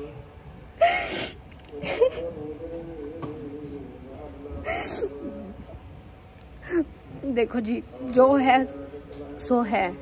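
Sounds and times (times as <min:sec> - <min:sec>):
woman sobbing gasps: 0:00.8 - 0:01.4.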